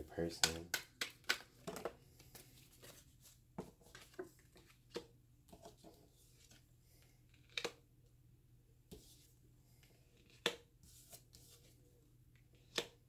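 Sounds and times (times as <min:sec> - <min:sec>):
cards being shuffled: 0:00.4 - 0:06.6.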